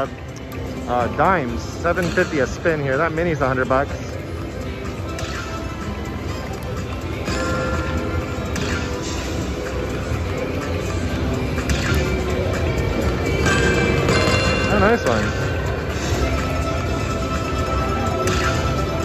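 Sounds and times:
slot machine bonus music: 0:00.0 - 0:19.0.

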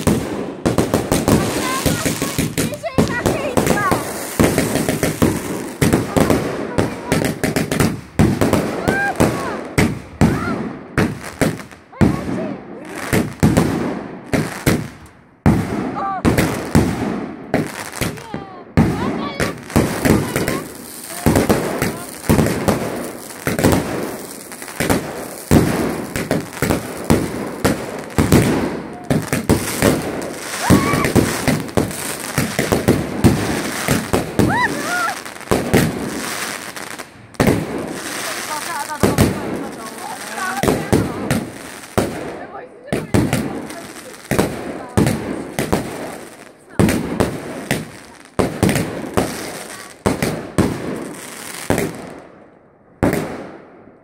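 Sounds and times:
fireworks bangs and crackling: 0:00.0 - 0:54.0
people's voices: 0:01.1 - 0:10.7, 0:11.9 - 0:13.4, 0:17.6 - 0:50.4.

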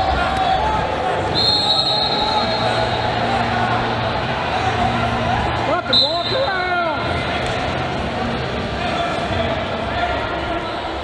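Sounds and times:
crowd voices in a gym: 0:00.0 - 0:11.0
high steady whistle-like tone: 0:01.3 - 0:03.0.

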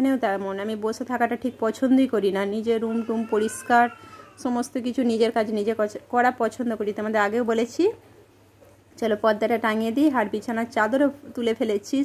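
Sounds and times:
woman speaking: 0:00.0 - 0:08.0, 0:09.0 - 0:12.0.

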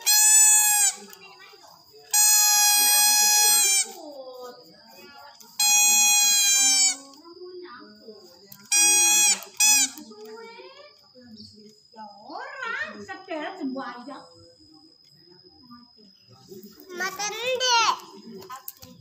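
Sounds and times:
toy trumpet blasts: 0:00.0 - 0:01.1, 0:02.1 - 0:04.0, 0:05.6 - 0:07.0, 0:08.7 - 0:10.0.

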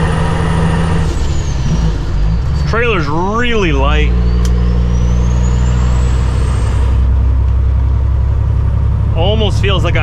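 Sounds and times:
diesel truck engine drone: 0:00.0 - 0:10.0.

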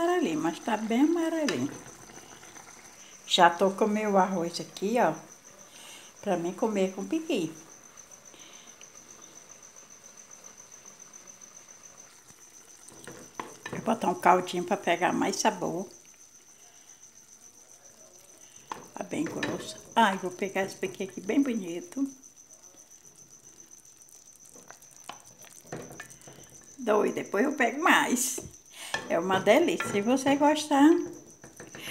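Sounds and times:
cricket trilling: 0:00.0 - 0:31.9
spoon knocking on metal pot: 0:28.4 - 0:31.8.

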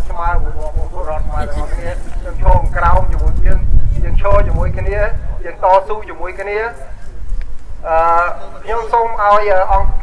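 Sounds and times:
man speaking over loudspeakers: 0:00.0 - 0:07.0, 0:07.8 - 0:10.0
wind buffeting microphone: 0:00.0 - 0:10.0.

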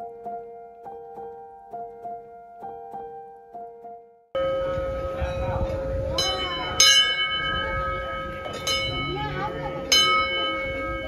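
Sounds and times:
large brass bell ringing: 0:04.4 - 0:11.0.

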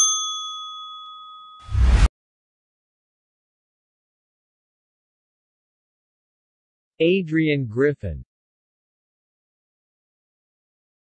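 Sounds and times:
notification bell ding: 0:00.0 - 0:01.8.

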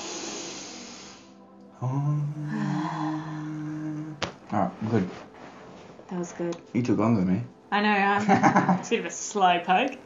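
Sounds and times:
long deep breath: 0:00.0 - 0:01.5
voice: 0:01.8 - 0:05.1, 0:06.1 - 0:10.0.

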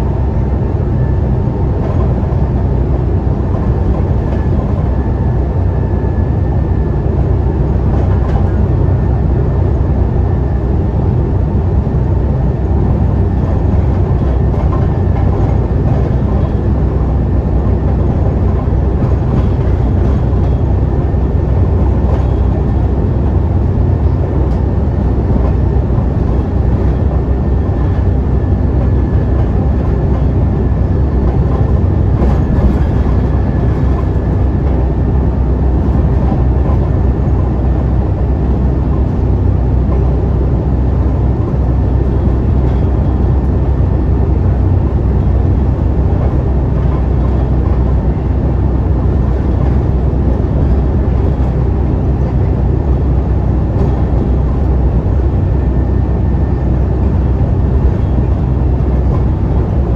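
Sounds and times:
bus engine drone: 0:00.0 - 0:59.9
road and tyre noise: 0:00.0 - 0:59.9.

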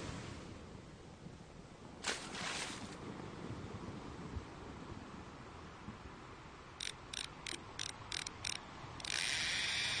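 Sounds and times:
fishing reel ratcheting: 0:06.8 - 0:10.0
reel winding: 0:06.8 - 0:10.0.

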